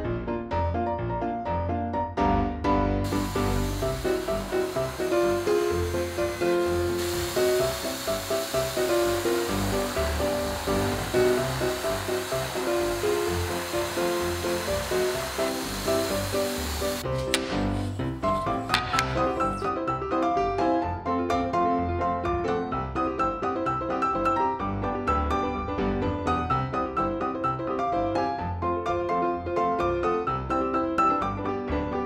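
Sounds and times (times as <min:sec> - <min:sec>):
background piano music: 0:00.0 - 0:32.0
electric drill boring wood: 0:03.1 - 0:19.7.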